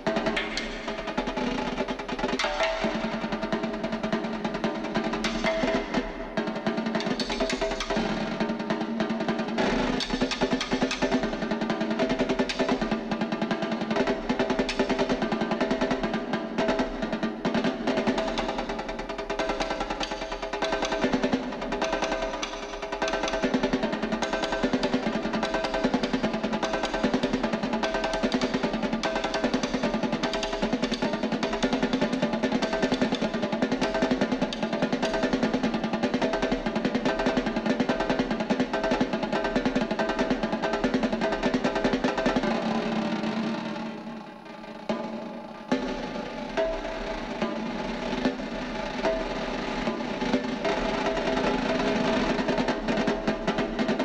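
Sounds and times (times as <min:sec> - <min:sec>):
snare drum rolls: 0:00.0 - 0:54.0.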